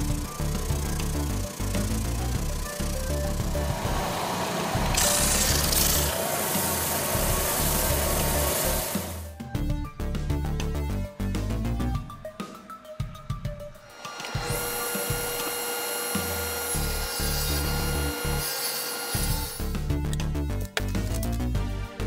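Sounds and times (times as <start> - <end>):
table saw cutting wood: 0.0 - 9.3, 13.8 - 19.7
background music: 0.0 - 22.0.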